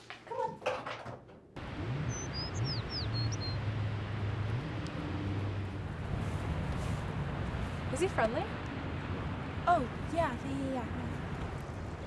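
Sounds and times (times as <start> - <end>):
low rumble of distant traffic: 1.4 - 12.0
bird chirping: 2.1 - 3.6.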